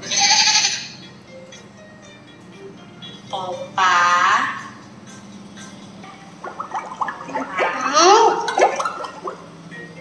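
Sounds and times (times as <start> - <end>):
faint backing tune: 0.0 - 10.0
gurgling bubbly chirps: 6.4 - 9.5.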